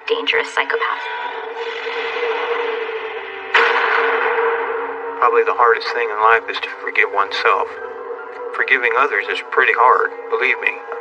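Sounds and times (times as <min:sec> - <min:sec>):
low hum drone: 0:00.7 - 0:11.0.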